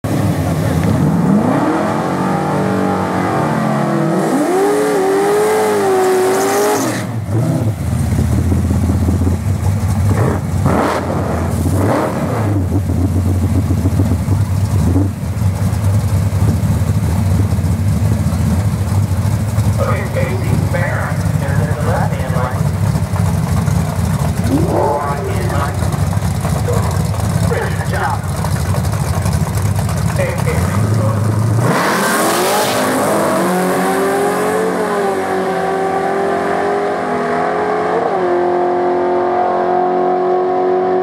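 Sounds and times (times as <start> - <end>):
car engine revving: 0.1 - 41.0
engine throttle blips: 7.2 - 35.2
loud engine idle: 12.8 - 31.6.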